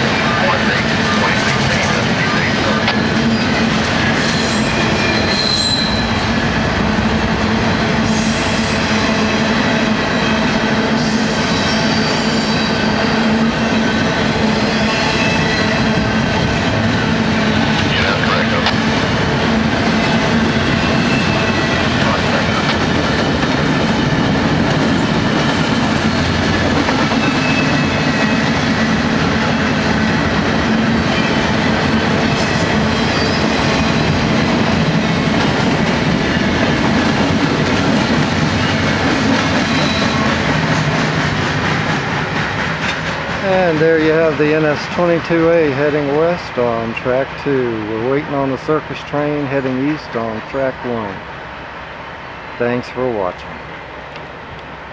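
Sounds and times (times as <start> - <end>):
freight train wheels rumbling on rail: 0.0 - 54.9
high wheel squeals: 4.2 - 6.3, 10.1 - 16.0, 27.2 - 28.5, 32.9 - 34.0, 39.6 - 40.2.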